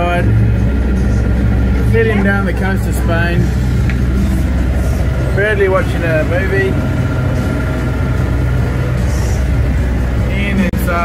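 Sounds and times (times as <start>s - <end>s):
diesel engine humming: 0.0s - 11.0s.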